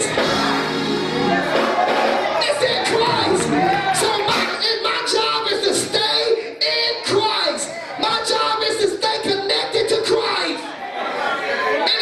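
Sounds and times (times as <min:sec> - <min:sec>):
congregation chattering: 0:00.0 - 0:12.0
preacher speaking into a microphone: 0:02.4 - 0:10.8.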